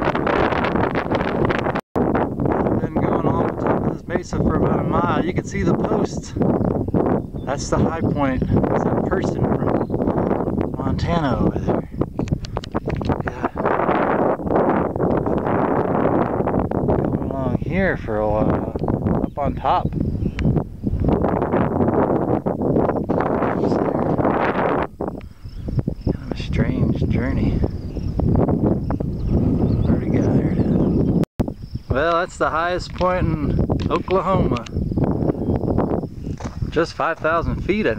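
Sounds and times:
wind buffeting microphone: 0.0 - 37.9.

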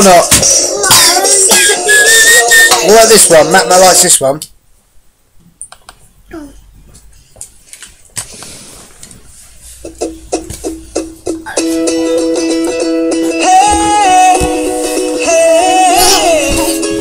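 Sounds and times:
song over laptop speakers: 0.2 - 3.3, 9.9 - 17.0.

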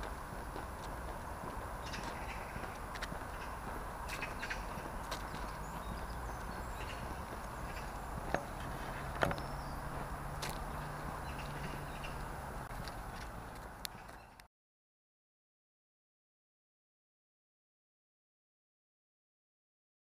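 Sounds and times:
distant road traffic rumble: 0.0 - 14.5
footsteps on tarmac path: 0.0 - 14.5.

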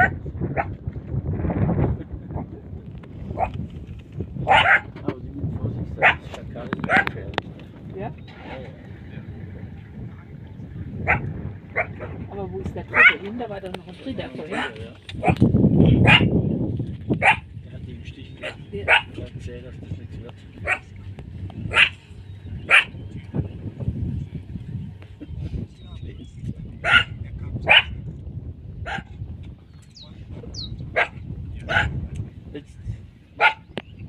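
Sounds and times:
steady low rumble: 0.0 - 34.0
man speaking: 17.7 - 20.8.

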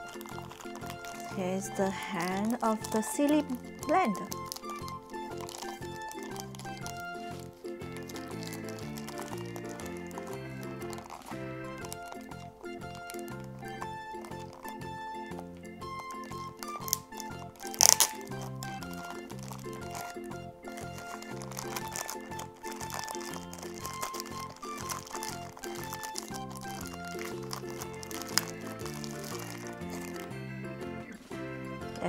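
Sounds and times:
plastic bag crinkling: 0.0 - 32.0.

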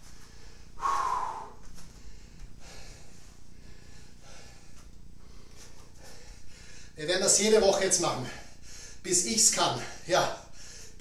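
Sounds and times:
man breathing hard: 0.1 - 7.0, 8.3 - 9.0, 9.9 - 11.0.

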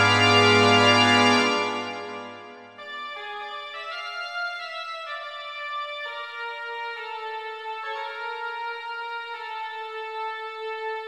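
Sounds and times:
soft organ playing: 0.0 - 7.4.

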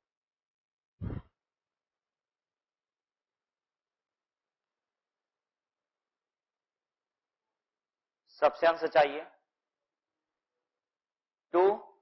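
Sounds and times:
person sighing: 1.0 - 1.3.

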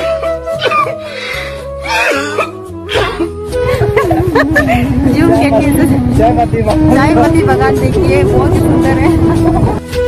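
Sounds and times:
man crying with choked sobs: 0.0 - 5.6
slow sad background music: 0.0 - 10.0.

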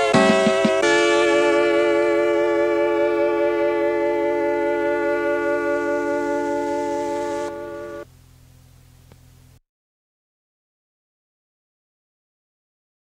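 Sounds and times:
electronic keyboard chord: 0.0 - 8.1.

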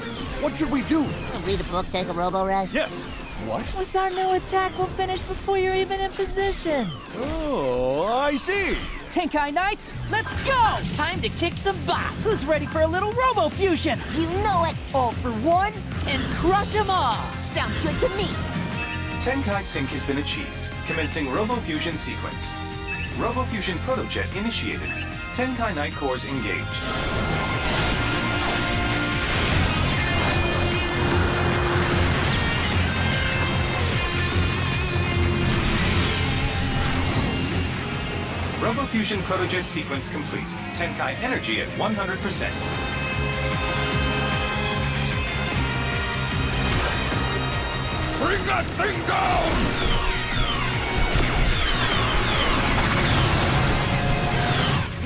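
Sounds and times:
dramatic cartoon music: 0.0 - 55.0
mechanical sound effects: 26.4 - 44.8, 46.3 - 55.0.

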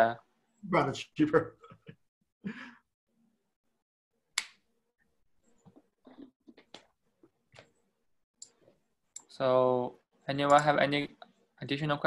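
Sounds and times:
breathy sigh: 2.4 - 2.8
faint small sounds: 4.4 - 11.6.

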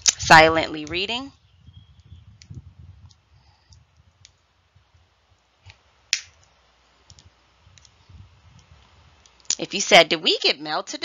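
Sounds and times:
faint clicks: 5.4 - 9.6
finger snap: 6.1 - 6.4.

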